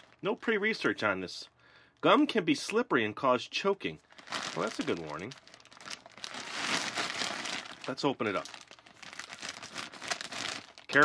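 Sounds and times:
plastic bag crinkling: 0.0s - 0.6s, 4.0s - 11.0s.

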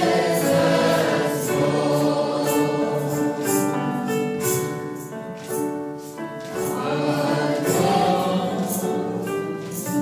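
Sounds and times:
choir singing sacred music: 0.0s - 5.1s, 6.0s - 10.0s.

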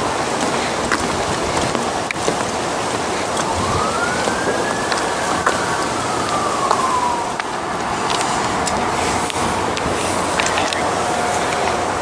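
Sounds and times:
steady rushing noise: 0.0s - 12.0s
distant siren wail: 3.2s - 12.0s.

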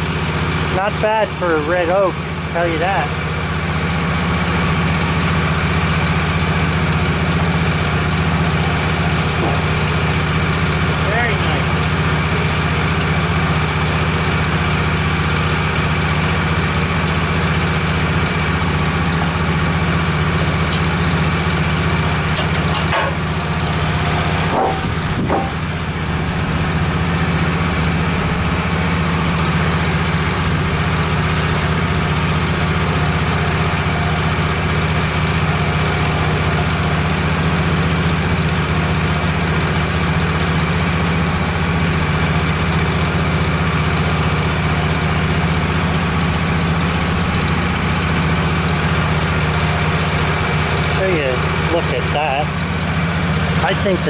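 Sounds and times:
sawmill engine running: 0.0s - 54.0s
boards knocking: 24.4s - 25.6s.

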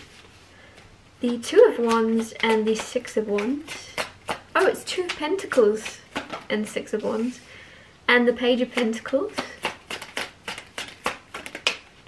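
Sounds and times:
cards snapping and clicking: 9.3s - 12.0s.

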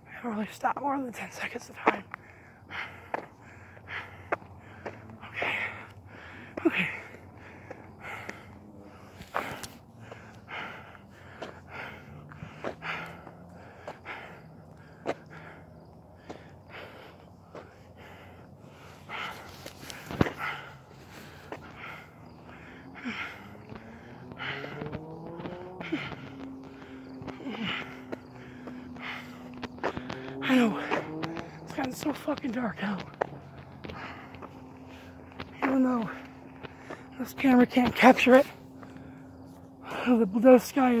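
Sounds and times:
faint gliding hum: 0.0s - 41.0s
man breathing heavily: 1.3s - 41.0s
footsteps: 17.5s - 40.1s.

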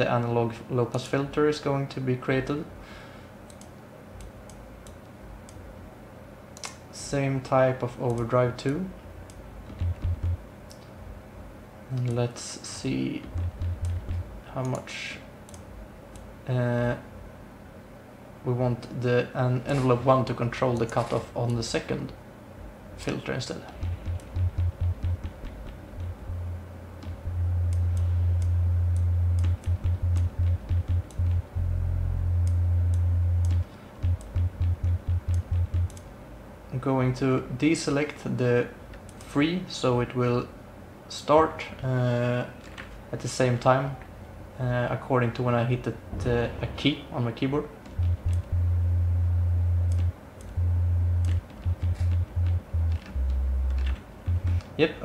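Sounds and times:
deep synthesizer bass notes: 9.7s - 10.4s, 13.3s - 14.3s, 23.8s - 36.0s, 46.1s - 54.8s
faint clicks: 49.8s - 50.6s.

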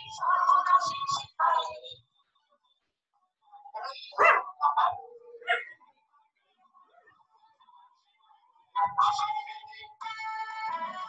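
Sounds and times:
dog barking: 3.8s - 5.8s.

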